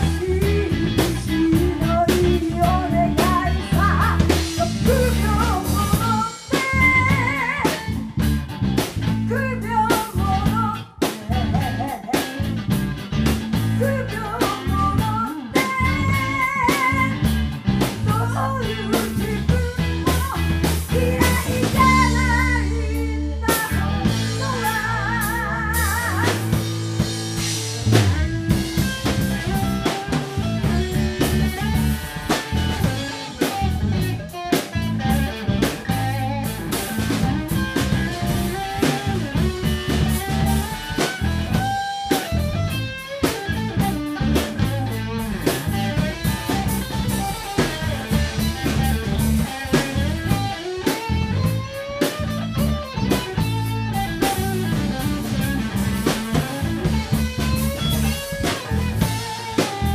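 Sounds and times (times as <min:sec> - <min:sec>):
drum kit: 0:00.0 - 0:59.9
electric bass: 0:00.0 - 0:59.9
electric guitar lead with bending notes: 0:00.0 - 0:59.9.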